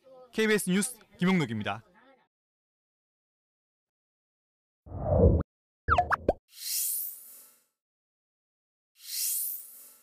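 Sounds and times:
popping blips with sliding pitch: 5.3 - 6.4.

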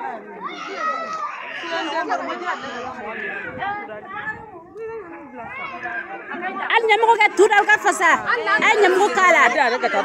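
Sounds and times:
voices talking and chattering: 0.0 - 10.0.

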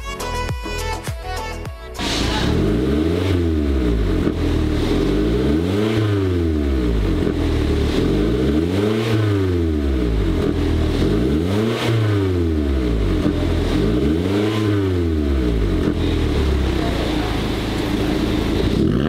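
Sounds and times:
car engine revving: 2.0 - 19.0.

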